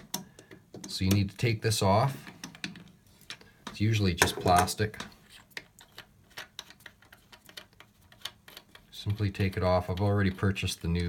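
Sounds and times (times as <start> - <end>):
plastic nut clicking while unscrewed: 5.0 - 10.1.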